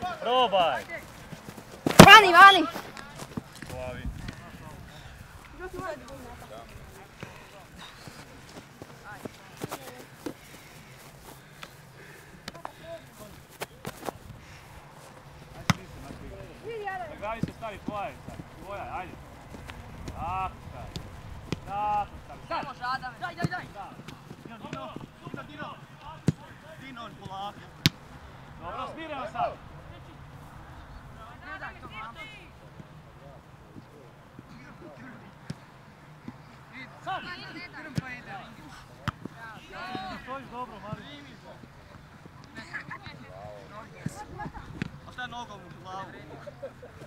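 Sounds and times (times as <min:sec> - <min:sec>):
players shouting and calling: 0:00.0 - 0:47.0
ball being kicked: 0:01.8 - 0:02.6, 0:15.6 - 0:16.0.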